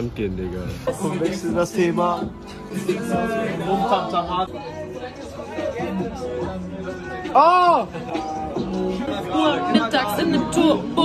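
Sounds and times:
background music: 0:00.0 - 0:11.0
young people chattering: 0:00.0 - 0:11.0.

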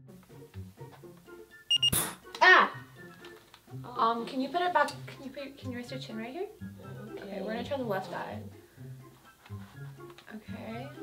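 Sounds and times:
soft background music: 0:00.0 - 0:11.0
high beeps: 0:01.7 - 0:02.0.

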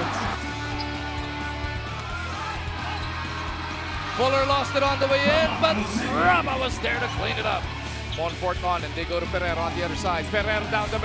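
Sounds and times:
arena crowd noise: 0:00.0 - 0:11.0
background music: 0:00.0 - 0:11.0.

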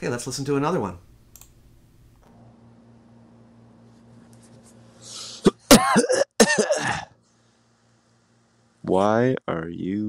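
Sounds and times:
faint steady hum: 0:00.0 - 0:10.0
person coughing and clearing throat: 0:05.3 - 0:07.2.

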